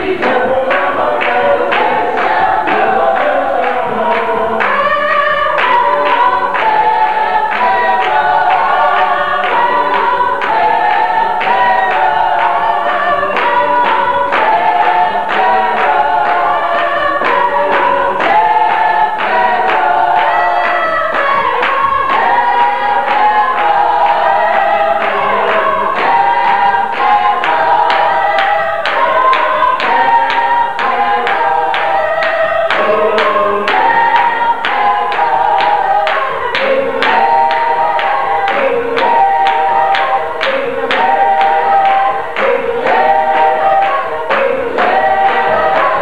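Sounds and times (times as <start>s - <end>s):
congregation singing gospel song: 0.0s - 46.0s
hand-clapping on the beat: 0.0s - 46.0s.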